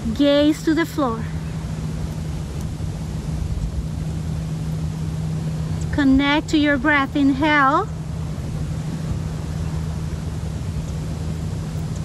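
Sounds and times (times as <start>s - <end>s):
low droning rumble: 0.0s - 12.0s.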